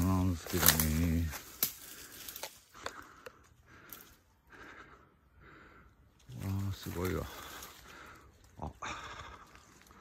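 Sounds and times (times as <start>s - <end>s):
person speaking: 0.0s - 1.5s, 6.3s - 7.6s
footsteps through undergrowth: 0.0s - 3.2s, 6.2s - 10.0s.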